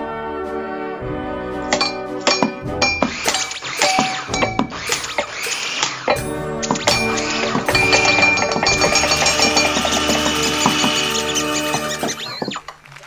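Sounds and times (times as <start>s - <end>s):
glassware and kitchen objects struck: 1.7s - 11.1s.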